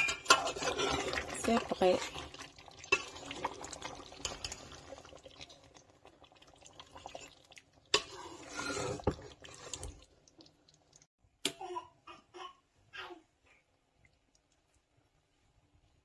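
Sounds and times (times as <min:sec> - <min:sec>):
spoon stirring thick sauce: 0:00.1 - 0:05.8, 0:06.6 - 0:10.9.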